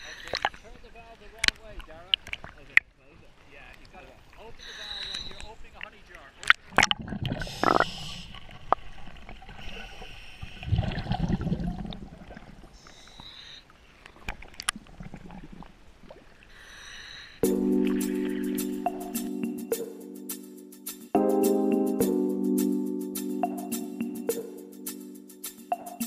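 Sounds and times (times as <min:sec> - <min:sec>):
underwater exhaust bubbles gurgling: 0:10.6 - 0:12.7.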